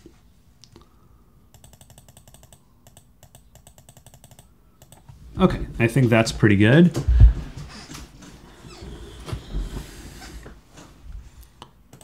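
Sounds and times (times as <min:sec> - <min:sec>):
low room noise: 0:00.0 - 0:12.0
computer mouse clicks: 0:01.5 - 0:05.1.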